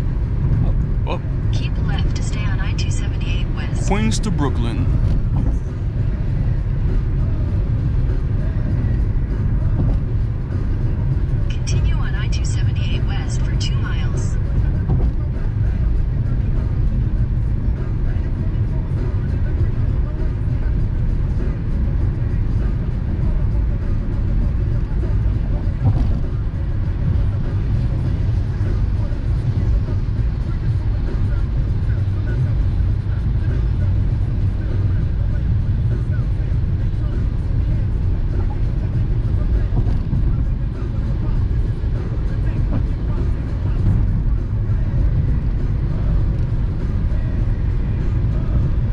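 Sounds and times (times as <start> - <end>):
car cabin road rumble: 0.0 - 48.9.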